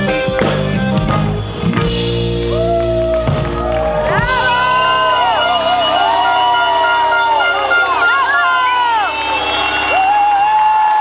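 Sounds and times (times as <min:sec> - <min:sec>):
crowd cheering: 0:01.8 - 0:11.0
fans screaming: 0:02.4 - 0:11.0.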